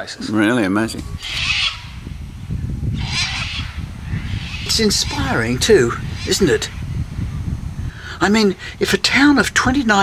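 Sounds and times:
low rumble: 1.1s - 8.0s
bird squawking: 1.2s - 2.2s, 2.9s - 7.0s.

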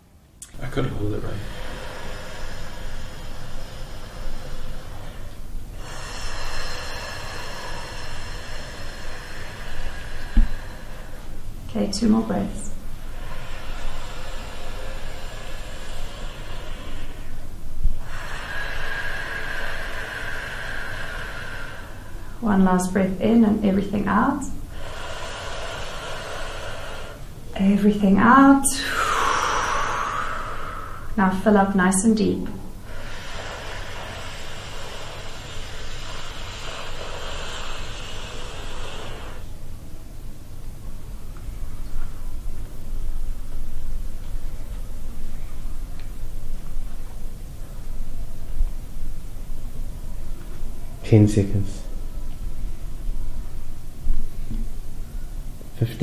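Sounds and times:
deep slow breathing: 0.0s - 51.1s, 51.7s - 55.8s
low steady rumble: 0.0s - 56.0s.

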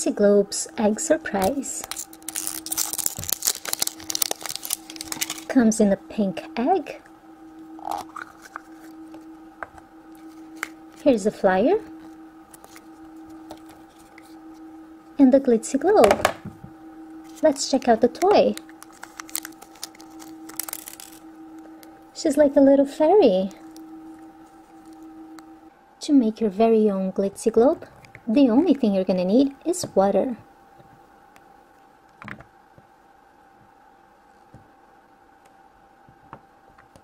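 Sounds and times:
faint steady hum: 0.0s - 37.0s
plastic wrapper crinkling: 1.4s - 5.6s, 12.0s - 14.4s, 17.2s - 21.9s.

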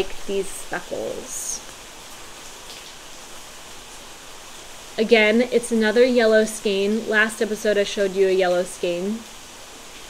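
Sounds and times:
rain falling hard: 0.0s - 10.0s.

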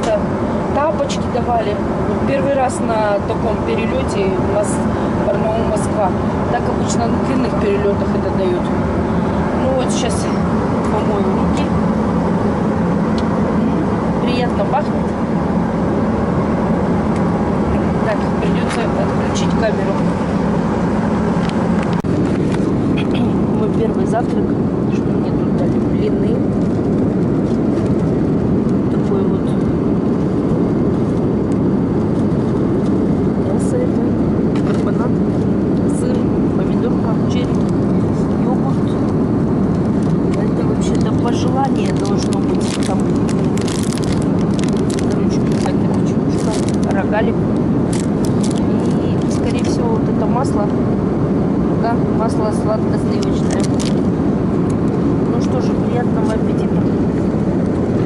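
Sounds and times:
airliner cabin noise: 0.0s - 58.0s
plastic wrapper crinkling: 41.8s - 46.9s, 47.9s - 49.5s, 53.5s - 54.0s.

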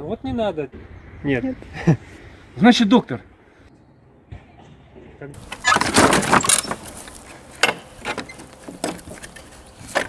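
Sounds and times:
gate fastening rattling and scraping: 5.4s - 10.0s.

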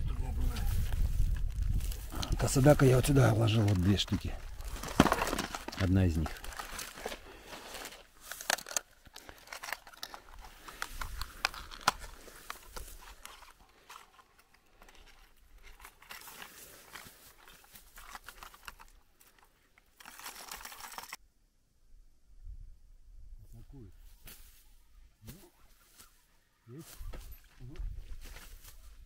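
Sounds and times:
plastic packaging crinkling: 1.4s - 21.2s.

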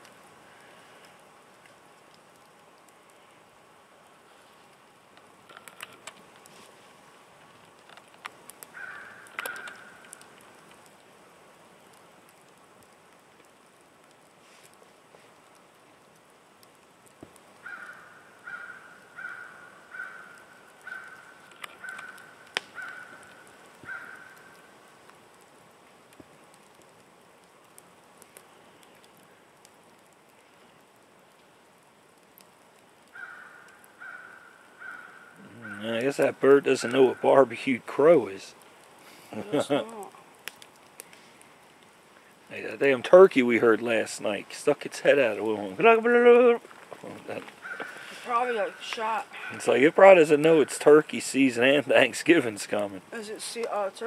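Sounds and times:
crow cawing: 8.7s - 10.2s, 17.6s - 24.7s, 33.1s - 35.9s, 47.6s - 49.7s.

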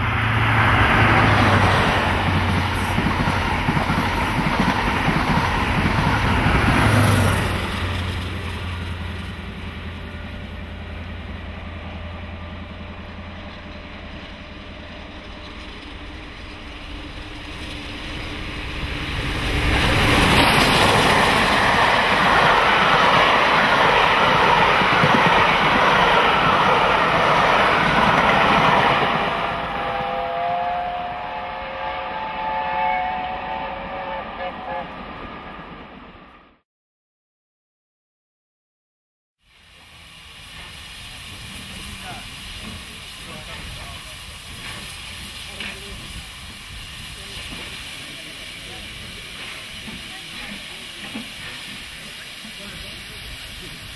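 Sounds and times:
steam locomotive hauling coaches: 0.0s - 36.2s, 39.5s - 53.9s.

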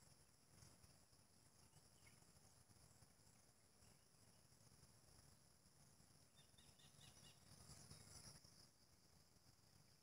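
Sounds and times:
faint high chirps: 0.0s - 4.7s, 6.1s - 9.1s.

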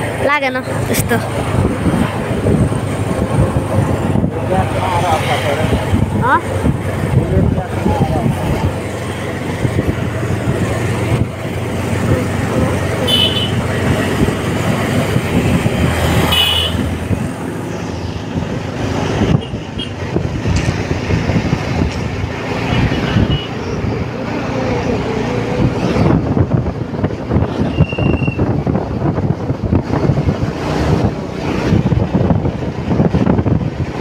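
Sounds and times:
tyre and traffic noise: 0.0s - 34.0s
vehicle engine rumble: 0.0s - 34.0s
wind on microphone: 0.0s - 34.0s.

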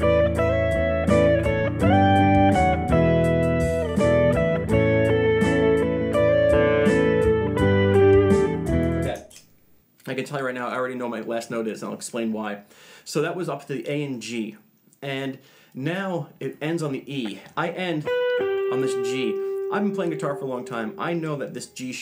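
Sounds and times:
electric guitar harmony line: 0.0s - 9.1s, 18.0s - 21.4s.

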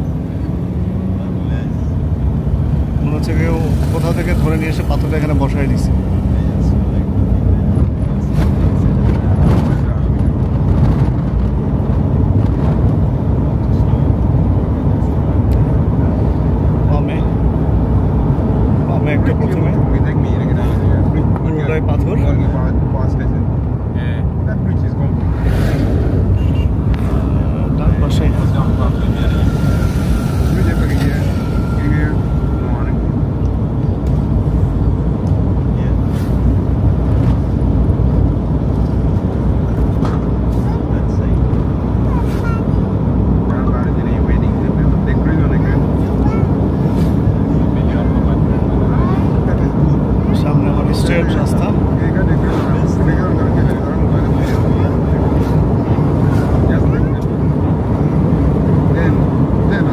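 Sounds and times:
vehicle rumble on paved road: 0.0s - 59.9s
thin high tone: 28.2s - 33.2s.

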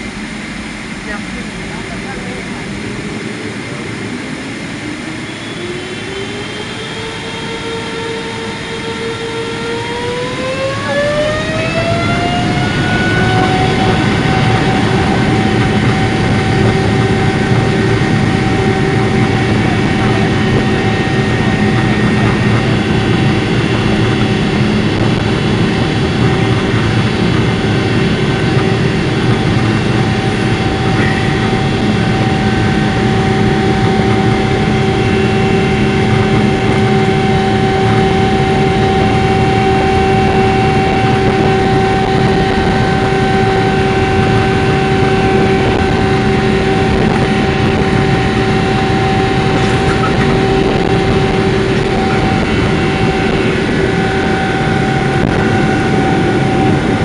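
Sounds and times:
jet engine rumble: 0.0s - 57.0s
jet engine whine: 0.0s - 57.0s.

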